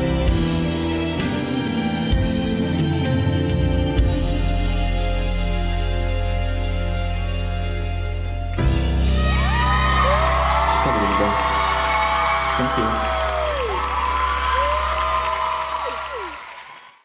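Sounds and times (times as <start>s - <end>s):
audience cheering and whooping: 9.2s - 17.0s.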